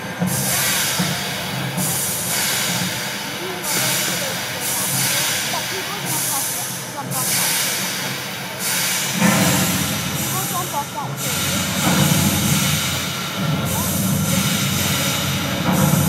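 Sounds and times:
crowd voices: 0.0s - 16.0s
low rhythmic rumble: 0.0s - 16.0s
loud hissing surges: 0.3s - 16.0s.

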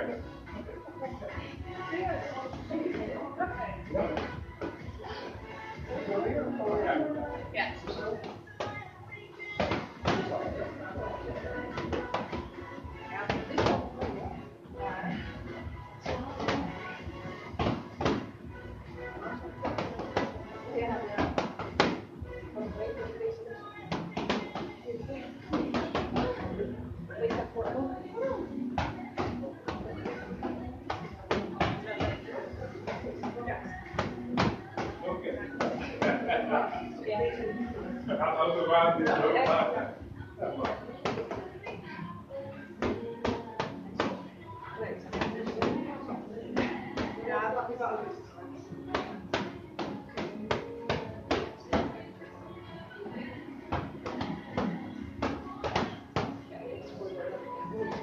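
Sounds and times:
music: 0.0s - 58.0s
voices: 0.0s - 58.0s.

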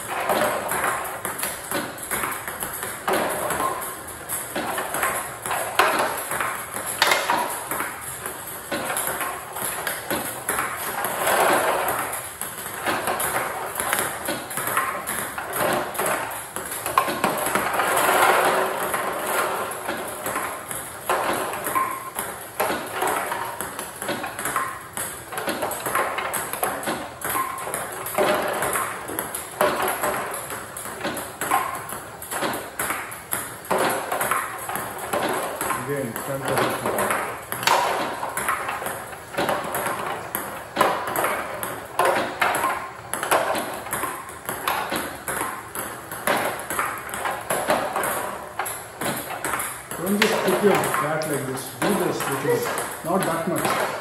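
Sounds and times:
table tennis balls clicking: 0.0s - 54.0s.

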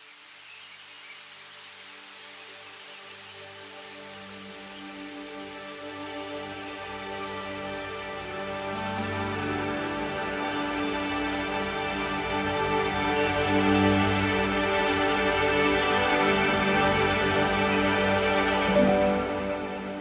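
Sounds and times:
steady rain hissing: 0.0s - 20.0s
soft music of held notes: 2.1s - 20.0s.

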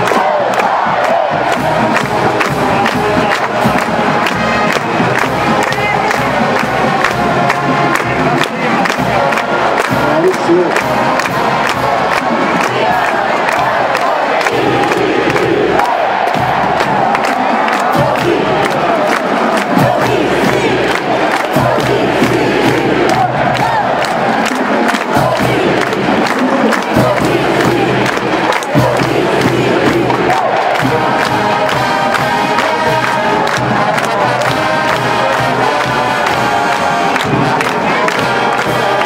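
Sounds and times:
marching band brass playing: 0.0s - 39.0s
stadium crowd cheering: 0.0s - 39.0s.

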